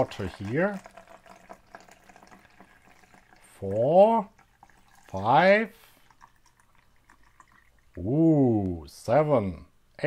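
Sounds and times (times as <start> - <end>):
water pouring into plastic beaker: 0.0 - 8.1.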